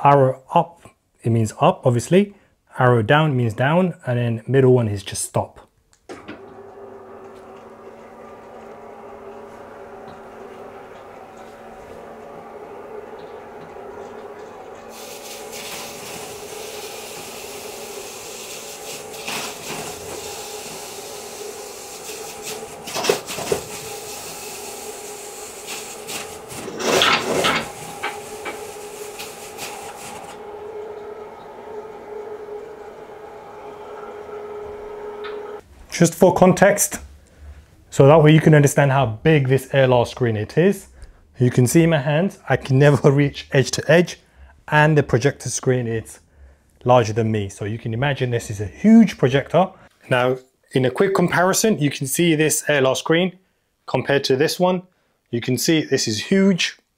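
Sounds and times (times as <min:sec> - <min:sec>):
electric motor humming: 0:06.2 - 0:35.6.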